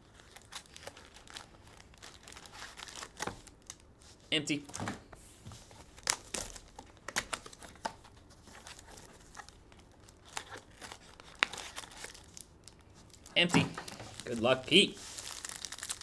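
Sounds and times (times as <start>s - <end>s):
foil packs crinkling: 0.0s - 3.9s, 5.8s - 16.0s.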